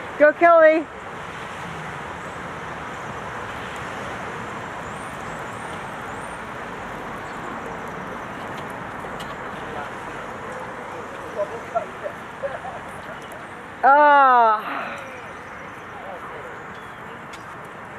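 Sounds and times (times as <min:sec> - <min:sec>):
distant traffic rush: 0:00.0 - 0:17.9.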